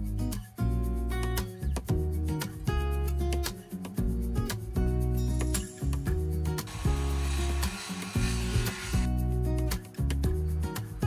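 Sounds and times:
music with repeating bass line: 0.0s - 11.0s
noisy rasp: 6.7s - 9.1s.

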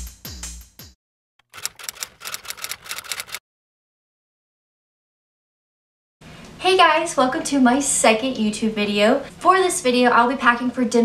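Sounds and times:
typewriter key clacks: 1.4s - 3.4s.

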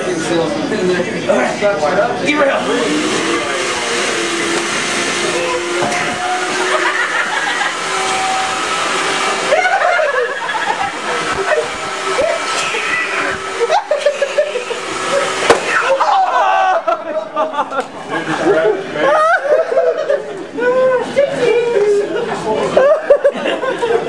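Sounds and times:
voices: 0.0s - 24.0s
shop vac motor whine: 1.6s - 24.0s
people laughing: 2.8s - 24.0s.

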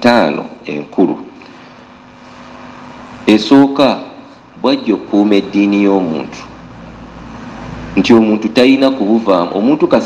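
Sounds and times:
man speaking: 0.0s - 1.4s, 3.2s - 6.7s, 7.9s - 10.0s
background hiss: 0.0s - 10.0s
faint low hum: 0.0s - 10.0s.

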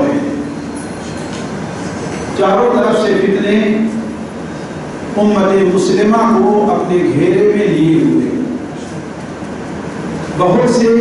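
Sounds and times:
man's voice: 2.4s - 4.0s, 5.2s - 8.5s, 10.4s - 11.0s.

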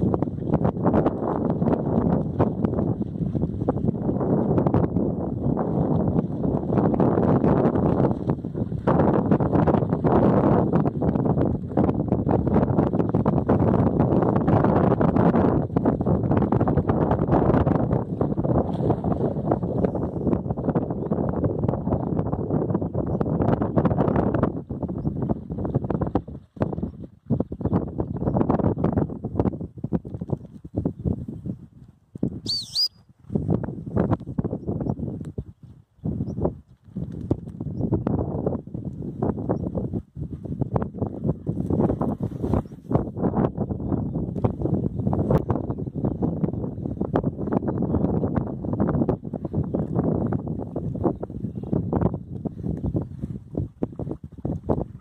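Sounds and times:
wind buffeting microphone: 0.0s - 55.0s
bird chirp: 32.5s - 33.1s.

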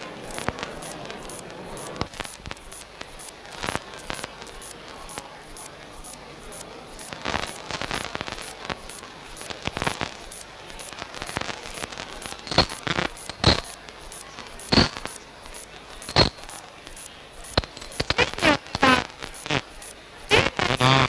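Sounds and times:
irregular crackling: 0.0s - 21.0s
loud sharp pops: 0.0s - 21.0s.

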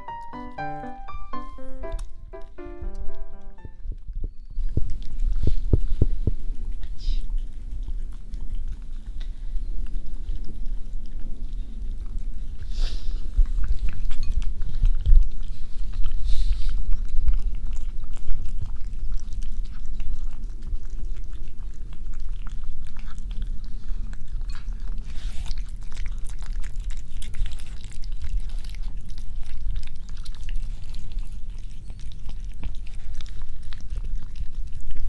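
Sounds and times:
cat chewing and lapping: 4.0s - 35.0s.

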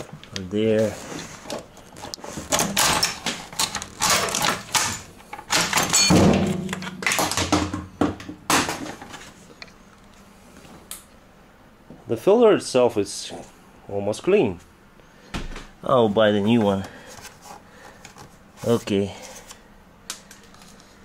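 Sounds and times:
metal parts clunking and scraping: 1.0s - 9.3s.

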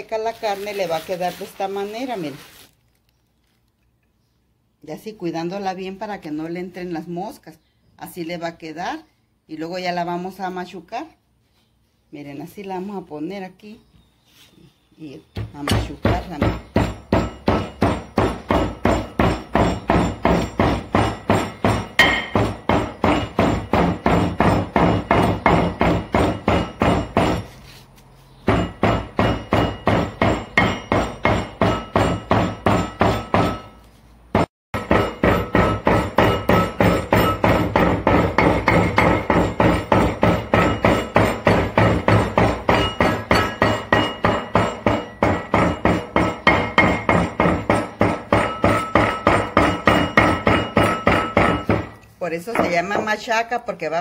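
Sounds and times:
stone pounding on stone slab: 15.4s - 27.6s, 28.4s - 33.8s, 34.4s - 53.3s.

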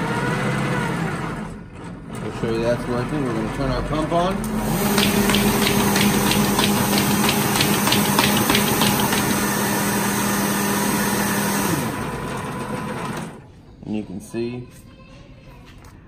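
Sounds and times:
paper folder machine hum: 4.3s - 13.5s
rapid even clicking of sheets: 4.8s - 9.4s.

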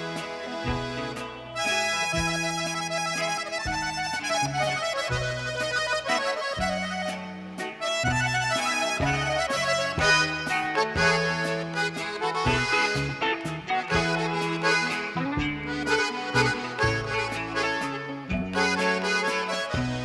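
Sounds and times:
band playing: 0.0s - 20.0s
bass line: 0.0s - 20.0s
button accordion melody: 0.0s - 20.0s.

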